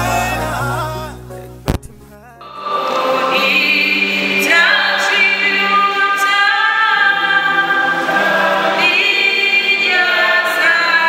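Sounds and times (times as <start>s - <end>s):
choir singing a hymn: 0.0s - 1.2s, 2.4s - 11.0s.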